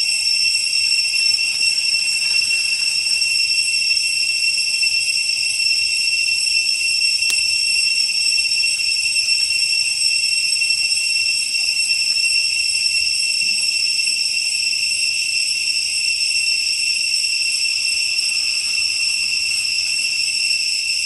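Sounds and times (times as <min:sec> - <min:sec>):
insects droning: 0:00.0 - 0:21.0.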